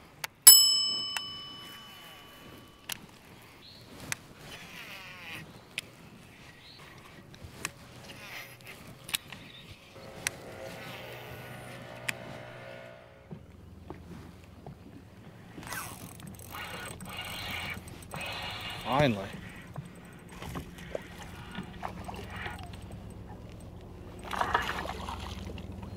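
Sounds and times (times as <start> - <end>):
bell-like ding: 0.5 - 2.8
distant motorboat engine hum: 0.5 - 25.9.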